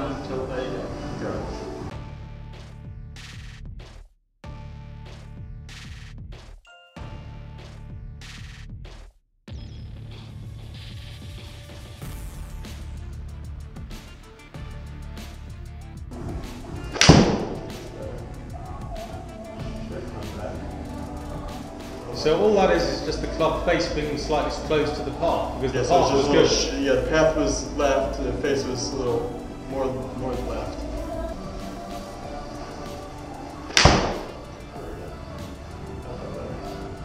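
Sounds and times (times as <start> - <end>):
music with steady beat: 10.2 - 37.0
golf club striking ball: 16.8 - 17.8, 33.7 - 34.4.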